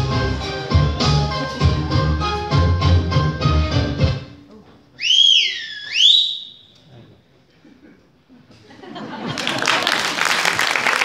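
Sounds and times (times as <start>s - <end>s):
person whistling shrilly: 5.0s - 6.8s.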